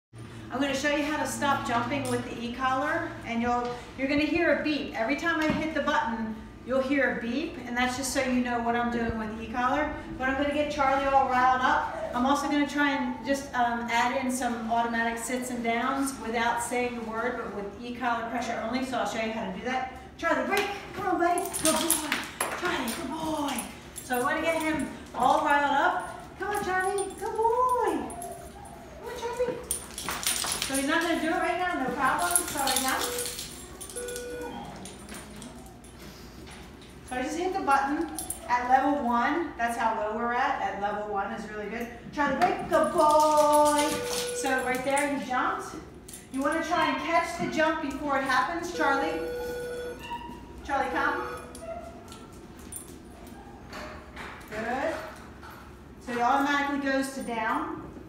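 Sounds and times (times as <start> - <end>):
dog whining and yipping: 28.0 - 29.2.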